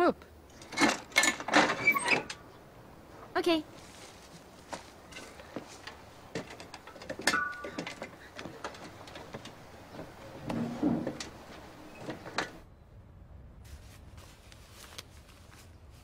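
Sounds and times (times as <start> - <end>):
footsteps on ladder rungs: 3.8 - 12.6
sharp metal clank: 7.2 - 7.9.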